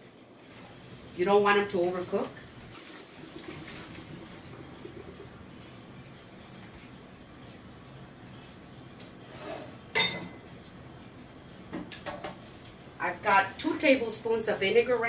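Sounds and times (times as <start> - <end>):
water draining through colander: 2.7 - 5.3
cookware clanking: 9.9 - 10.4.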